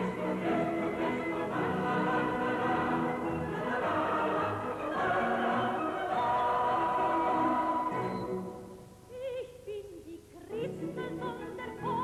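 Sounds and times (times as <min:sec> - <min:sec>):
orchestra and chorus singing: 0:00.0 - 0:08.9.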